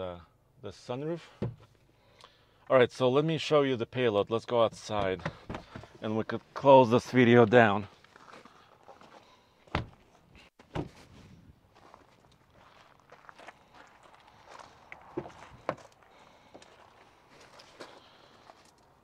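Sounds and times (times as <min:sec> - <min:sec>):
car door thunks: 0:01.4 - 0:01.7, 0:05.0 - 0:05.9, 0:09.7 - 0:10.0, 0:10.7 - 0:11.0
footsteps on gravel: 0:07.8 - 0:09.4, 0:11.7 - 0:18.9.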